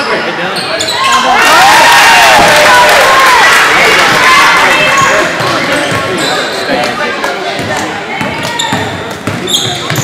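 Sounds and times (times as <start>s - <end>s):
sneakers squeaking: 0.0s - 1.3s, 4.8s - 6.9s, 7.5s - 10.0s
spectators' voices and calls: 0.0s - 10.0s.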